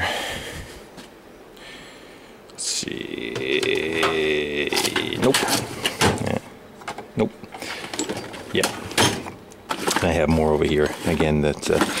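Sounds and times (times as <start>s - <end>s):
loose metal bits shifting: 3.4s - 6.3s, 7.6s - 12.0s
metal tool chest drawers opening and shutting: 4.0s - 7.0s, 7.8s - 12.0s.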